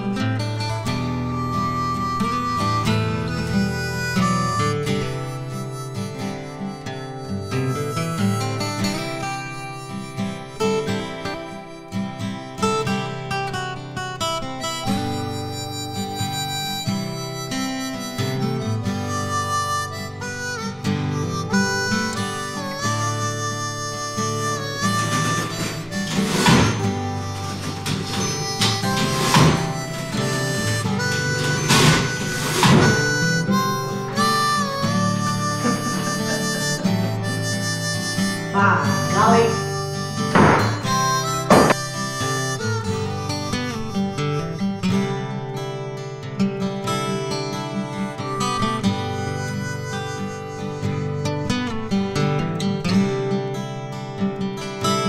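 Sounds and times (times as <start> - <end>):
acoustic guitar: 0.0 - 55.0
harmonica playing: 0.0 - 55.0.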